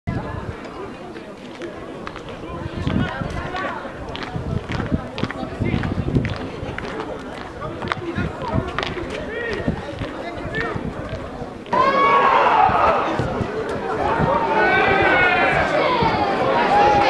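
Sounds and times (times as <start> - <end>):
burst of voices: 11.7 - 17.0
players shouting: 11.7 - 17.0.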